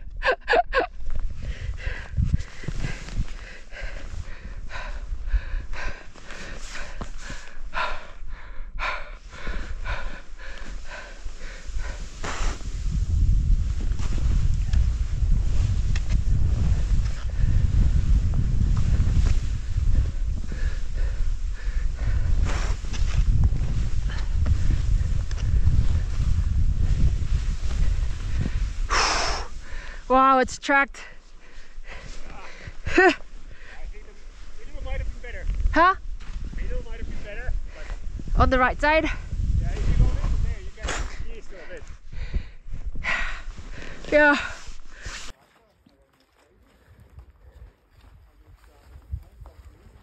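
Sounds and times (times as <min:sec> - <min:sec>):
wind buffeting microphone: 0:00.0 - 0:45.1
heavy breathing: 0:01.3 - 0:13.0, 0:16.9 - 0:30.1, 0:31.0 - 0:34.3, 0:41.0 - 0:45.3
skis hissing over snow: 0:10.8 - 0:17.0, 0:44.0 - 0:45.4.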